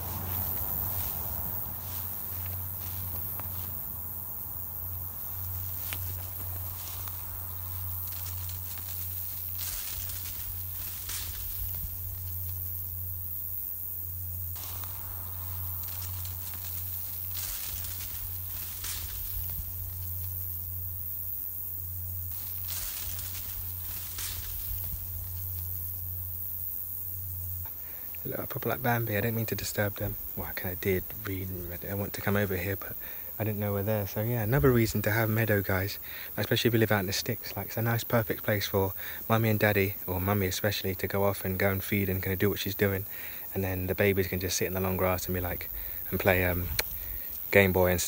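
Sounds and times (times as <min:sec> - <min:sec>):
footsteps rustling through grass: 0:00.0 - 0:32.8, 0:43.0 - 0:48.0
steady low hum: 0:00.0 - 0:48.0.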